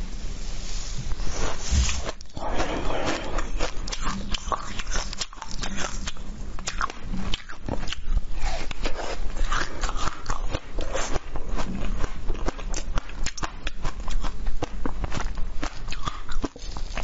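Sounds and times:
crunching frozen fruit: 0:03.3 - 0:17.0.

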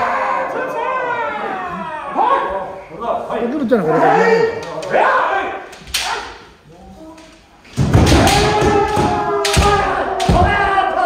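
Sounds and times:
bamboo sword strikes: 0:07.8 - 0:10.7.

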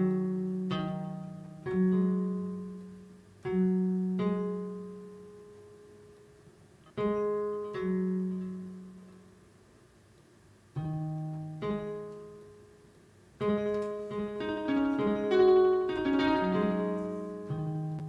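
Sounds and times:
clean electric guitar plucked notes: 0:00.0 - 0:06.2, 0:06.9 - 0:09.3, 0:13.4 - 0:18.0.

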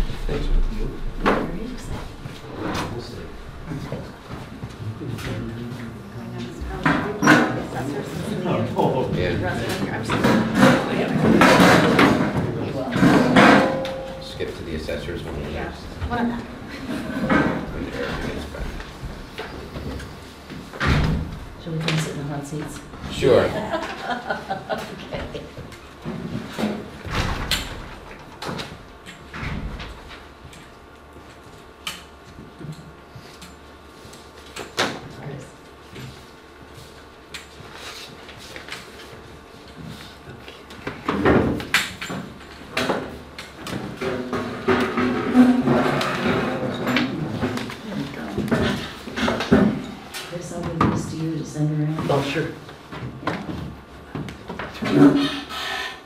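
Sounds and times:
chairs scraping: 0:01.4 - 0:08.2, 0:42.8 - 0:51.3, 0:53.1 - 0:55.6.

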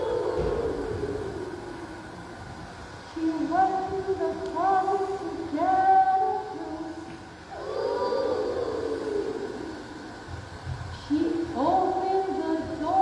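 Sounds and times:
woman singing: 0:00.0 - 0:01.6, 0:03.1 - 0:07.1, 0:11.0 - 0:13.0
children singing together: 0:00.0 - 0:02.0, 0:07.5 - 0:10.1.

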